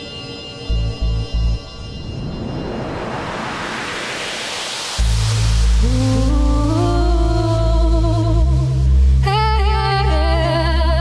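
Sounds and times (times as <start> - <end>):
steady rushing noise: 1.5 - 9.2
background music: 5.0 - 11.0.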